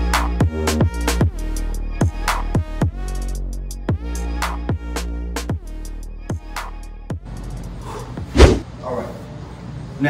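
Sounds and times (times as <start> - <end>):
body thud on exercise mat: 8.3 - 8.6.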